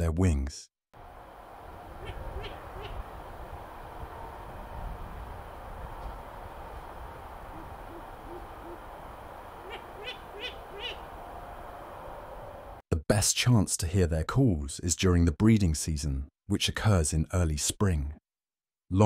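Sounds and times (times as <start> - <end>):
owl sharp high calls: 2.0 - 3.0, 9.6 - 11.0
owl hooting: 2.0 - 3.1, 7.5 - 8.8, 9.6 - 11.1.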